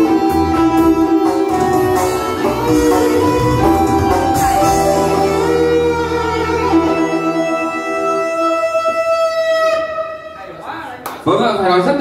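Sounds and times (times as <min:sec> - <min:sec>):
electronic keyboard chord: 0:00.0 - 0:10.6.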